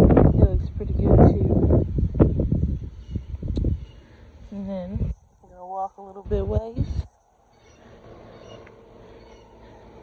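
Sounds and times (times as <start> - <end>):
low rumbling on microphone: 0.0 - 7.2.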